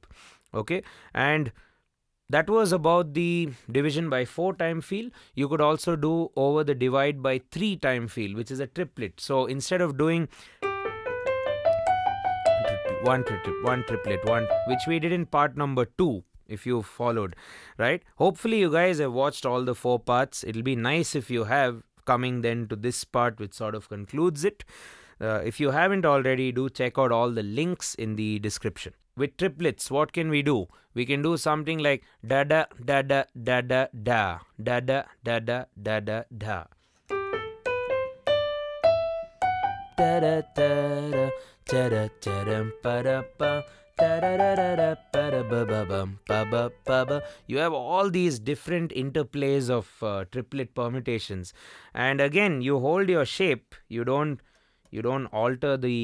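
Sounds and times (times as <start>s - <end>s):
digital piano scale run: 10.6s - 15.3s, 37.1s - 47.3s.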